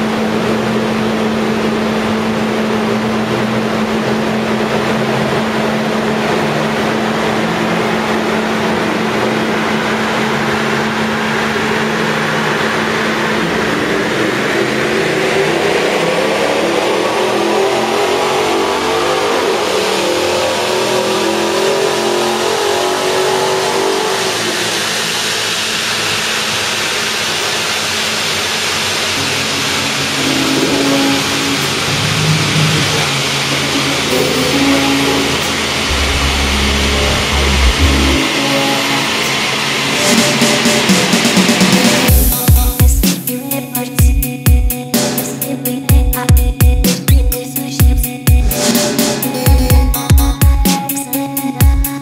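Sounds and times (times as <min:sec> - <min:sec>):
car engine revving under load: 0:00.0 - 0:26.4, 0:29.3 - 0:42.2.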